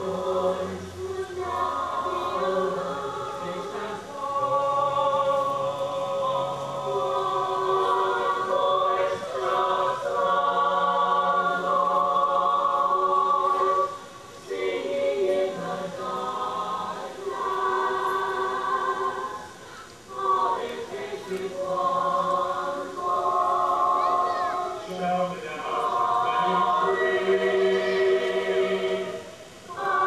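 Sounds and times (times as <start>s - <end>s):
choir singing long notes: 0.0s - 30.0s.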